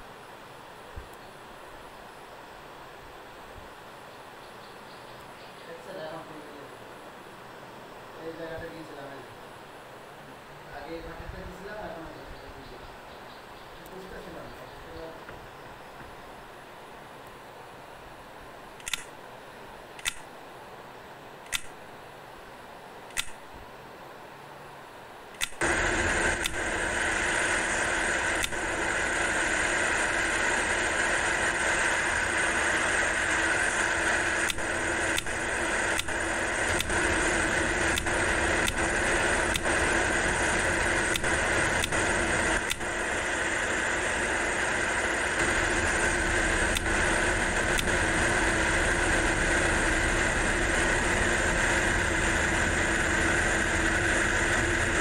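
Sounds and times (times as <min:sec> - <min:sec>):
electric fan whirring: 0:00.0 - 0:55.0
fan switch click: 0:18.8 - 0:19.1, 0:20.0 - 0:20.3, 0:21.4 - 0:21.7, 0:23.1 - 0:23.4, 0:25.4 - 0:25.6
sharp clicks: 0:18.8 - 0:19.2, 0:20.0 - 0:20.3, 0:21.4 - 0:21.8, 0:23.1 - 0:23.4, 0:25.3 - 0:55.0.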